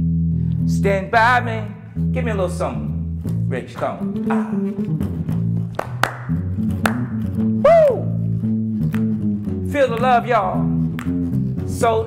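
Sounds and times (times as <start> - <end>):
electric bass guitar plucked notes: 0.0 - 12.0
hand claps: 5.7 - 7.4, 8.8 - 9.3, 9.9 - 10.3, 10.9 - 11.3.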